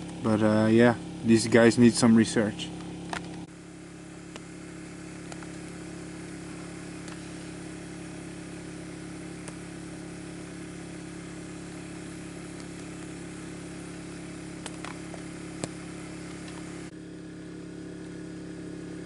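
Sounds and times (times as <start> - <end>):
small engine humming: 0.0 - 19.0.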